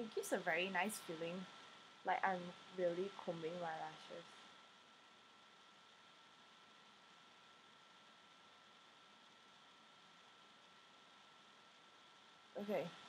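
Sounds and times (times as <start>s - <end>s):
microphone hiss: 0.0s - 13.0s.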